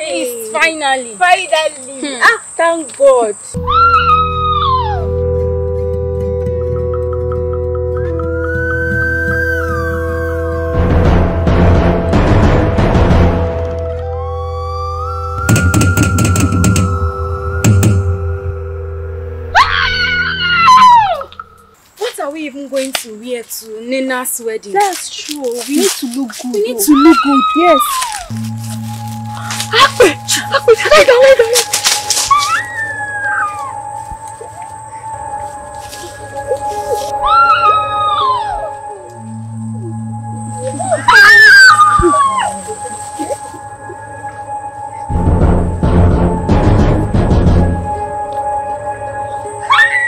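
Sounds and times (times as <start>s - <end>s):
person screaming high-pitched: 3.6s - 5.1s, 26.8s - 28.3s, 37.2s - 39.0s, 40.8s - 42.8s
high howling cry: 3.6s - 5.2s, 8.3s - 10.7s, 19.5s - 21.6s, 26.8s - 28.3s, 32.3s - 34.0s, 36.5s - 39.2s, 40.6s - 43.4s, 49.6s - 50.0s
music bed with low drone: 3.6s - 21.8s, 27.0s - 50.0s.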